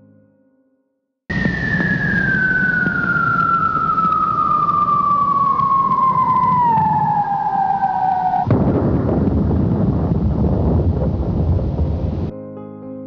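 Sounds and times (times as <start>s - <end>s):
warning siren falling tone: 1.3s - 10.0s
rumble: 1.3s - 12.3s
rock blast bang: 8.5s - 12.3s.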